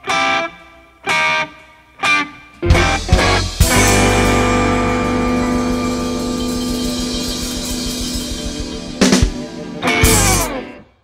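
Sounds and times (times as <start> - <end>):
electric guitar and bass chord: 2.7 - 10.9
cymbals washing: 3.5 - 10.6.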